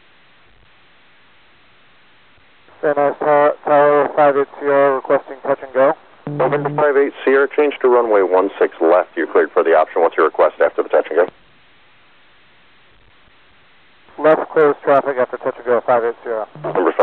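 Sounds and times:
faint radio hiss: 0:00.0 - 0:17.0
man talking over radio: 0:02.8 - 0:11.3, 0:14.2 - 0:17.0.

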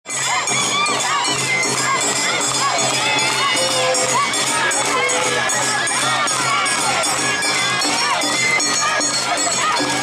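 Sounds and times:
children shouting calls: 0:00.1 - 0:10.0
crowd voices: 0:00.1 - 0:10.0
festival street music: 0:00.1 - 0:10.0.

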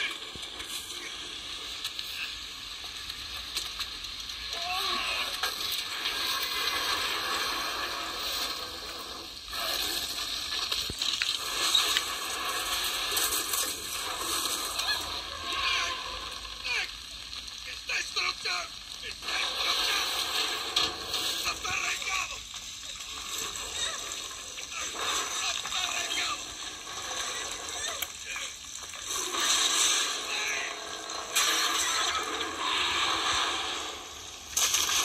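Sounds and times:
heavy rain: 0:00.0 - 0:35.0.

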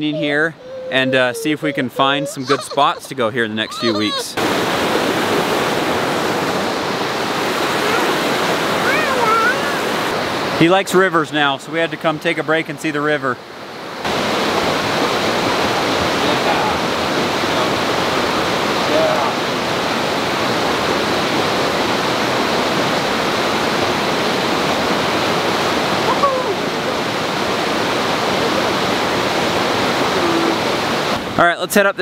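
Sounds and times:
river rushing over rocks: 0:03.8 - 0:11.0, 0:13.5 - 0:31.4.

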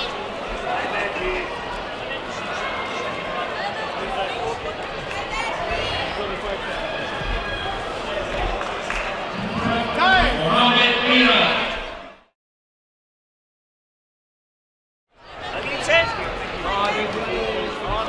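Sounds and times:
people talking: 0:00.0 - 0:11.7.

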